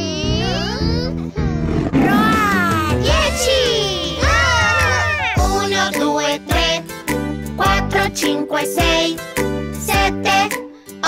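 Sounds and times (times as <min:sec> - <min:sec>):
upbeat children's song music: 0:00.0 - 0:01.4, 0:02.1 - 0:11.0
gliding vocal cries: 0:00.0 - 0:05.6
cartoon characters roaring playfully: 0:01.5 - 0:05.4.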